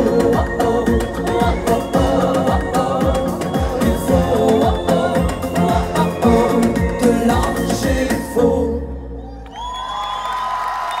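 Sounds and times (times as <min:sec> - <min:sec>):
crowd cheering and whooping: 0:09.2 - 0:11.0
scattered applause: 0:09.3 - 0:11.0.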